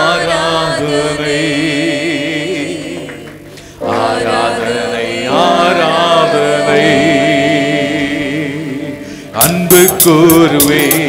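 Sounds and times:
accompanying music: 0.0 - 11.0
worship song singing: 0.0 - 11.0.

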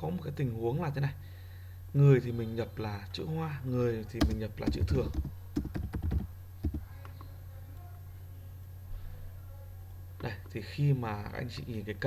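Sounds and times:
typing on computer keyboard: 4.2 - 6.9.

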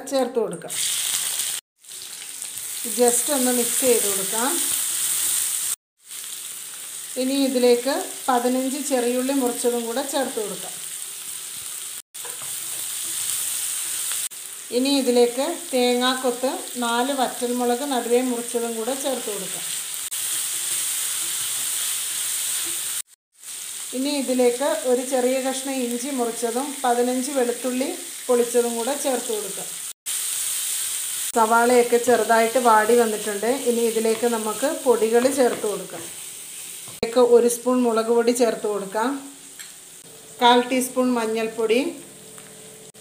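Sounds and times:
onions sizzling in a pan: 0.7 - 43.0.

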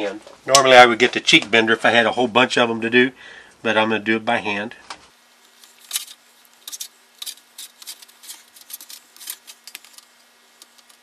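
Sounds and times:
faint steady hum: 0.0 - 11.0
sheet metal ticks and clicks: 6.6 - 11.0.

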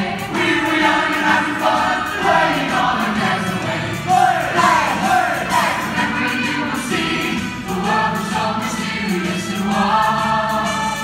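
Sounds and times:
cast singing in chorus: 0.0 - 11.0.

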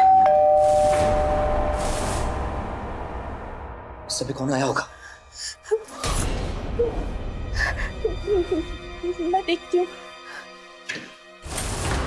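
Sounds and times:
low dramatic background music: 0.6 - 12.0.

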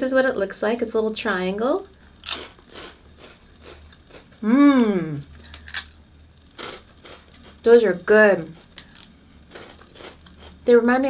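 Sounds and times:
corn puff crunching: 2.2 - 4.3, 5.4 - 7.6, 8.6 - 10.6
chewing crunches: 2.2 - 4.4, 5.4 - 7.6, 8.5 - 10.6.

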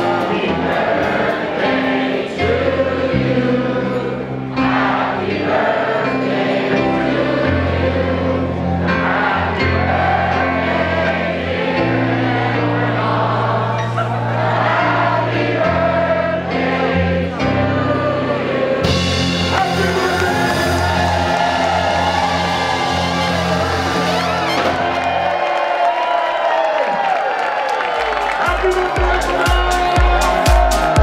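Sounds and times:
live band music: 0.0 - 2.8, 18.7 - 25.2, 28.4 - 31.0
crowd singing along: 0.0 - 25.3, 28.7 - 31.0.

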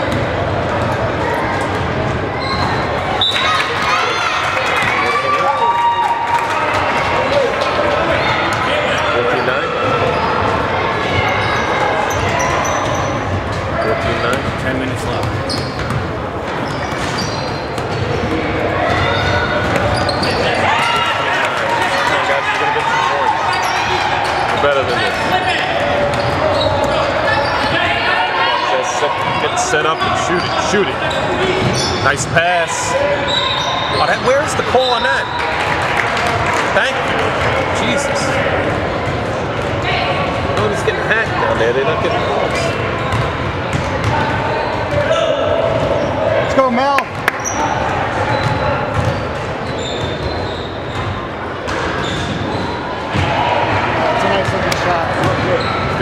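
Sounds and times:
basketball bouncing on court: 0.0 - 2.8, 11.4 - 21.1, 43.0 - 46.1, 48.3 - 53.4.

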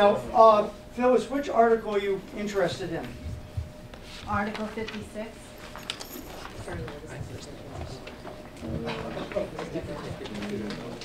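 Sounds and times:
papers and coat rustling: 2.6 - 11.0.

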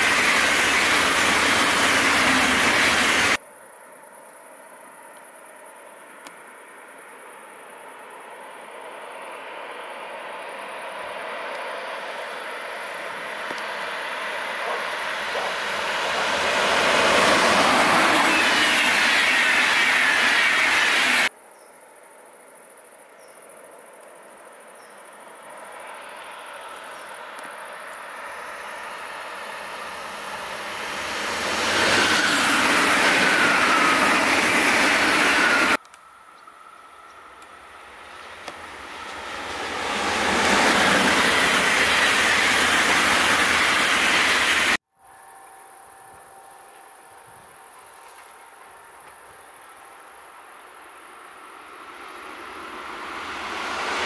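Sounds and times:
high train whine: 0.0 - 3.4, 4.5 - 21.3, 23.6 - 54.0
train wheels rushing on rail: 0.0 - 3.4, 8.8 - 21.3, 25.8 - 35.8, 36.6 - 44.8, 50.8 - 54.0.

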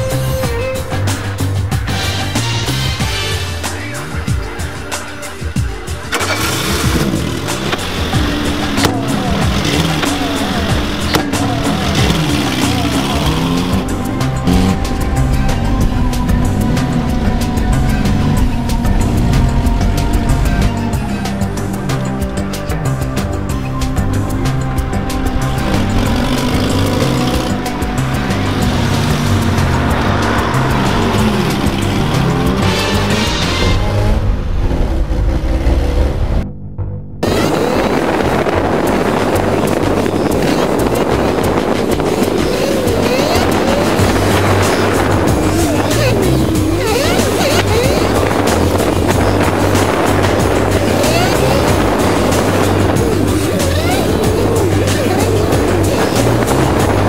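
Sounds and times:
background music: 0.0 - 57.0
car engine running: 0.0 - 57.0
tyre noise: 3.8 - 36.4, 37.2 - 57.0.

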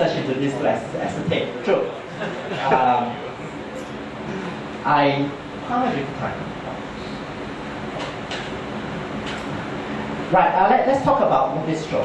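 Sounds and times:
room noise rumble and hiss: 0.0 - 12.0.

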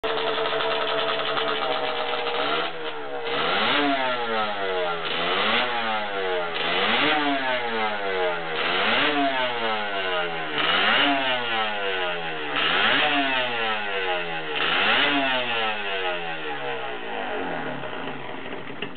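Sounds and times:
motorcycle engine revving: 0.0 - 18.9.

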